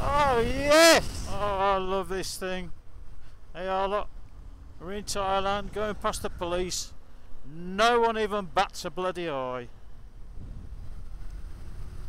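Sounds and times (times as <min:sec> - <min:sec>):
wind rumbling on microphone: 0:00.0 - 0:09.0, 0:09.7 - 0:12.0
low road noise: 0:00.0 - 0:12.0.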